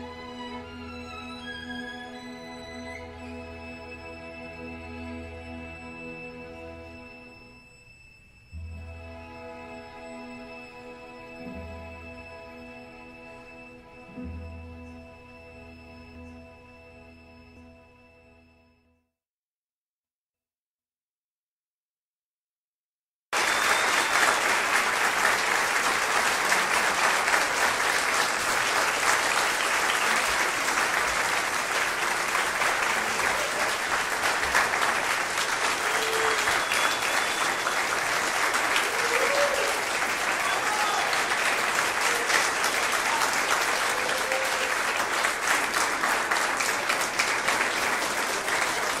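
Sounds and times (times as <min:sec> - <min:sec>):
audience applauding: 0:23.3 - 0:49.0.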